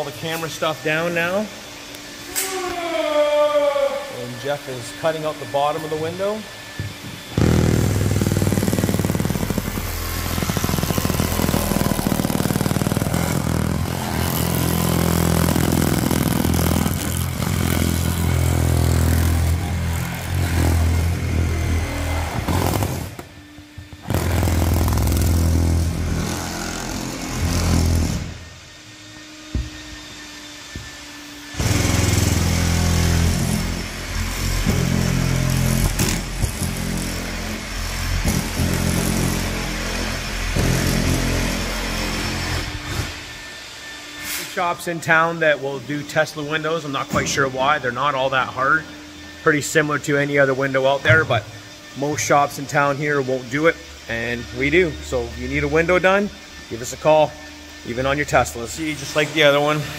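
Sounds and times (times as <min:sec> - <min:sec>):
oscillating cutting knife buzzing: 0:00.8 - 0:44.1.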